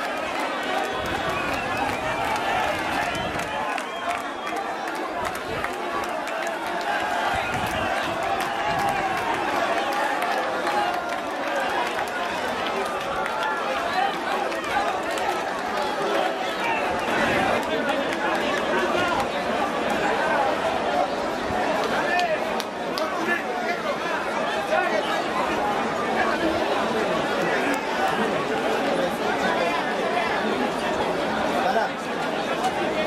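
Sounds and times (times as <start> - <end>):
crowd babble: 0.0 - 33.0.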